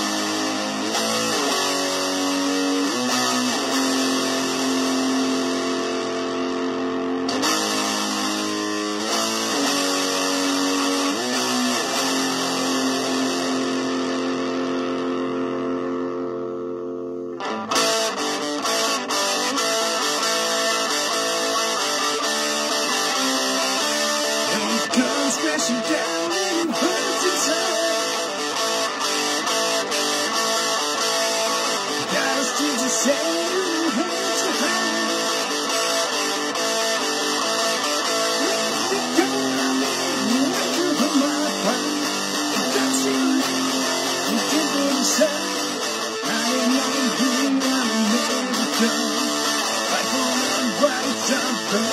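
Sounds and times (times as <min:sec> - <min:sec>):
electric guitar chords and riff: 0:00.0 - 0:51.9.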